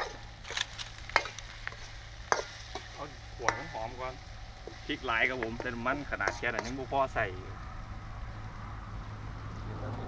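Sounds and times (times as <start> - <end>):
spatula clanking on wok: 0.0 - 0.5, 1.1 - 7.0
spatula scraping in a wok: 0.0 - 7.3
food sizzling: 0.0 - 9.5.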